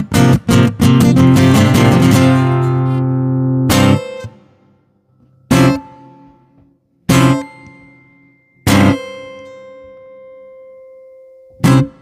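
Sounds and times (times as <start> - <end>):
acoustic guitar chord ringing: 0.9 - 12.0.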